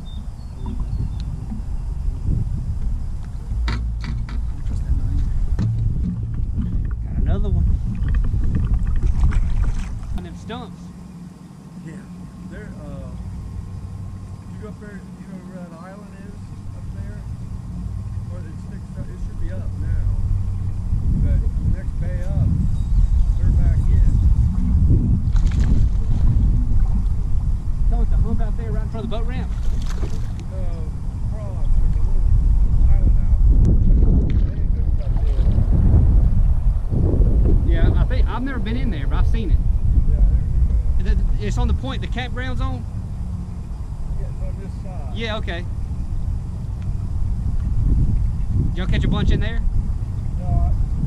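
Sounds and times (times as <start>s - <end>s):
boat motor humming: 0.0s - 51.0s
wind buffeting microphone: 0.0s - 51.0s
faint voices: 14.4s - 22.5s.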